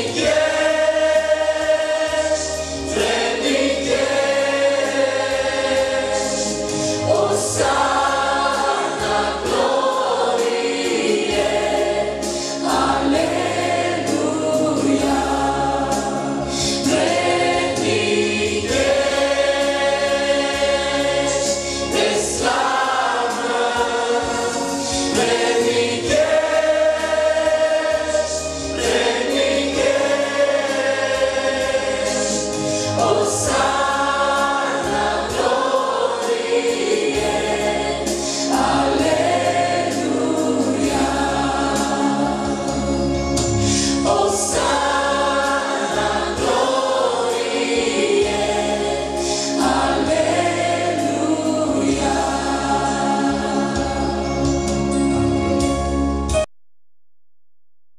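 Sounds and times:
men and women singing: 0:00.0 - 0:42.8, 0:43.7 - 0:54.2
congregation singing: 0:00.0 - 0:56.5
instrumental accompaniment with bass: 0:00.0 - 0:56.5.

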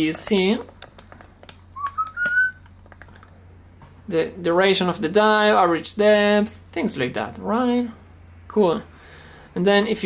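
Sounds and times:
person whistling rising notes: 0:01.8 - 0:02.6.

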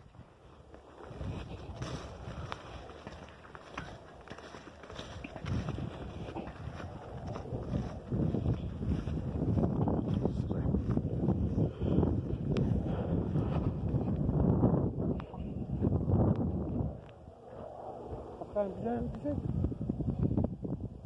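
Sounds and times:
wind buffeting microphone: 0:00.0 - 0:21.0
footsteps brushing through tall grass: 0:00.2 - 0:12.8.

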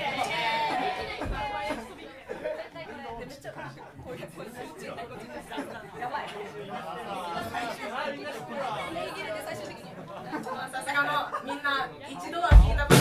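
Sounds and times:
chatter of people talking: 0:00.0 - 0:13.0.

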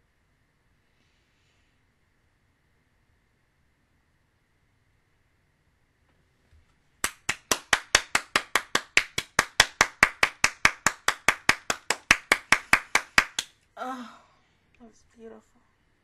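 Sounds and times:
person clapping hands fast: 0:07.0 - 0:13.6.

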